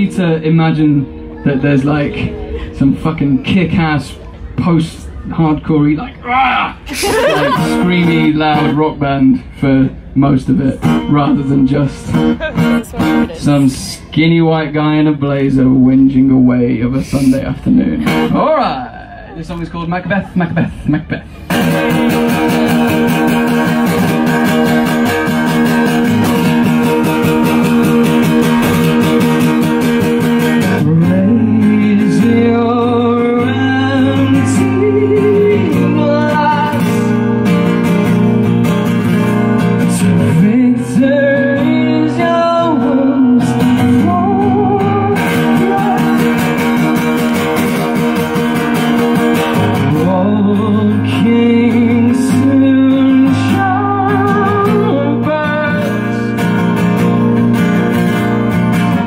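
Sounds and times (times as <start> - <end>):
acoustic guitar: 0.0 - 59.0
man singing: 6.9 - 12.3, 13.0 - 18.5, 21.6 - 29.7, 30.4 - 37.3, 39.6 - 48.1, 49.1 - 58.0.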